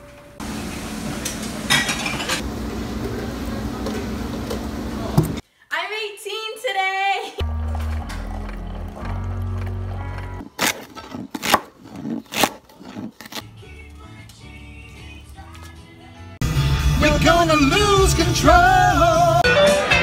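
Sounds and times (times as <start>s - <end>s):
girl speaking: 5.7s - 7.4s
music: 7.4s - 10.5s, 13.4s - 20.0s.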